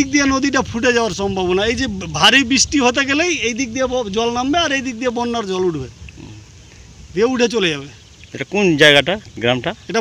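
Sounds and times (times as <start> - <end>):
man speaking: 0.0 - 6.5, 7.1 - 10.0.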